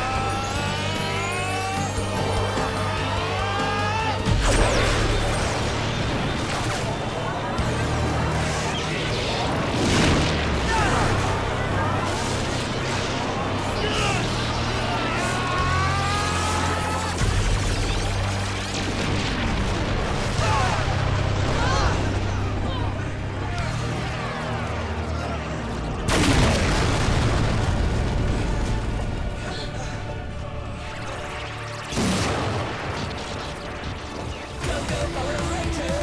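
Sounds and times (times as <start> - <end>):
dramatic score: 0.0 - 36.0
loud blast: 26.0 - 29.4, 31.8 - 34.2.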